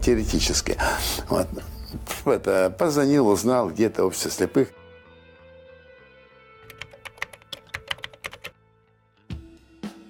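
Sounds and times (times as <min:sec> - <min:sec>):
soft background music: 0:00.0 - 0:10.0
keyboard key clicks: 0:06.6 - 0:08.5.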